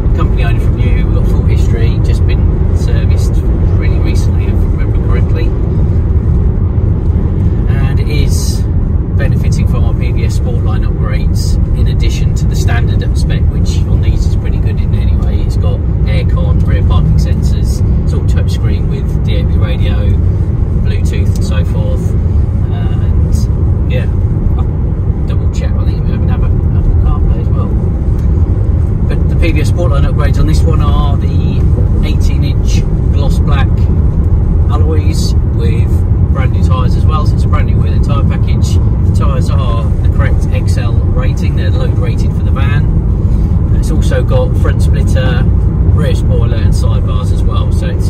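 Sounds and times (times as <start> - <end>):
diesel engine inside van cabin: 0.0 - 48.0
road noise: 0.0 - 48.0.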